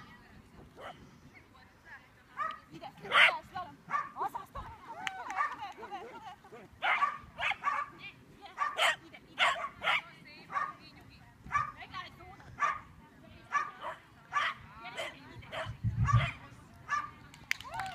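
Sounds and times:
small dog barking: 0:02.4 - 0:04.2, 0:06.8 - 0:08.0, 0:08.6 - 0:10.8, 0:11.5 - 0:11.8, 0:12.6 - 0:12.9, 0:13.5 - 0:17.1.

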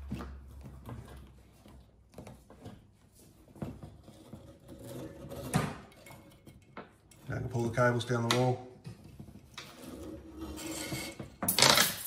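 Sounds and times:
wire hook scraping inside wall: 0:03.8 - 0:07.9, 0:09.4 - 0:12.0.

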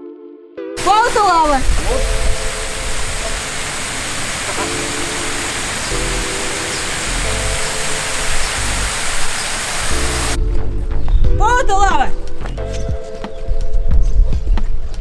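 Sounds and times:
fountain water rushing: 0:00.8 - 0:10.4.

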